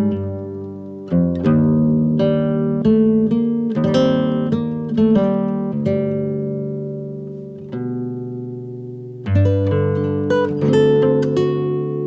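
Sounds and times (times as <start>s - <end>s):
acoustic guitar plucked: 0.0s - 12.0s.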